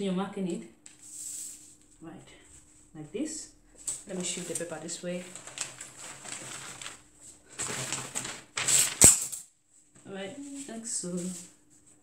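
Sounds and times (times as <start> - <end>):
paper sheet rustling on table: 0.9 - 1.9, 3.8 - 9.4.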